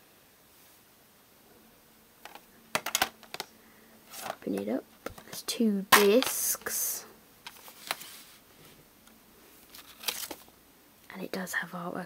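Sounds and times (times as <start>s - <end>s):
plastic case rustling: 2.2s - 3.5s, 4.1s - 6.7s, 7.5s - 8.2s, 9.7s - 10.5s
plastic case clicks: 2.3s - 3.5s.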